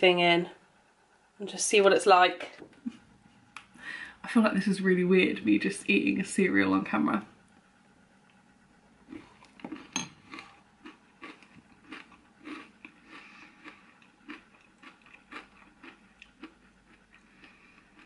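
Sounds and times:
person chewing crunchy cereal: 0:09.0 - 0:18.0.

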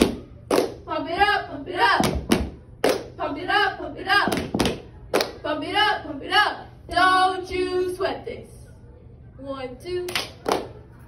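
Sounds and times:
girls chanting a cheer: 0:00.0 - 0:08.5
sharp claps and thuds: 0:02.0 - 0:03.1, 0:04.2 - 0:05.3.

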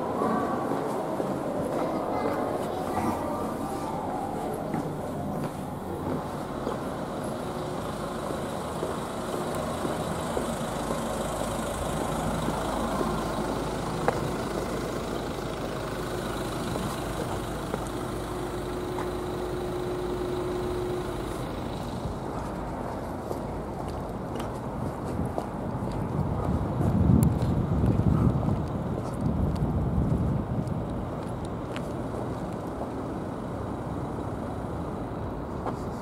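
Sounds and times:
road traffic hum: 0:00.0 - 0:36.0
vehicle engines idling: 0:00.0 - 0:36.0.

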